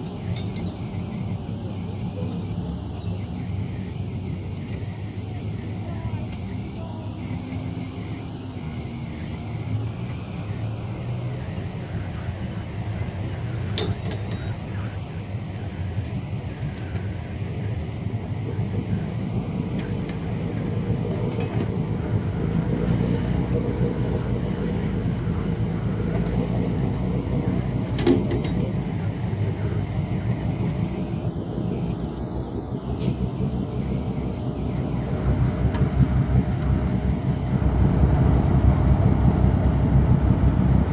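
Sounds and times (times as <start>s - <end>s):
motor boat engines running: 0.0s - 40.9s.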